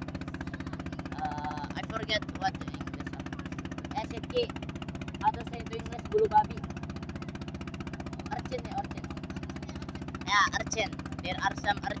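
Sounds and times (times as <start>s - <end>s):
boat engine throbbing: 0.0s - 12.0s.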